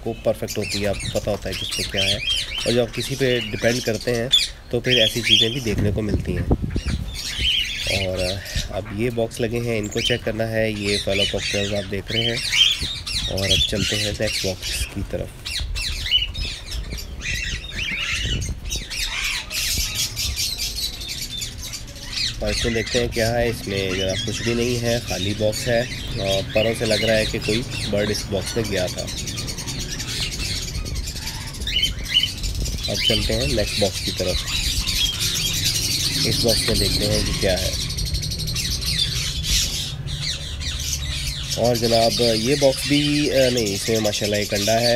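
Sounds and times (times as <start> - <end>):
cockatiels squawking and chirping: 0.0 - 44.9.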